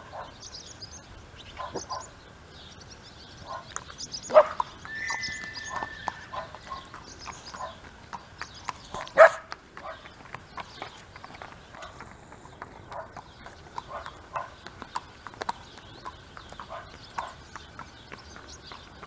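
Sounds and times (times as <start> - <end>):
horse hoofbeats on sand: 3.4 - 19.0.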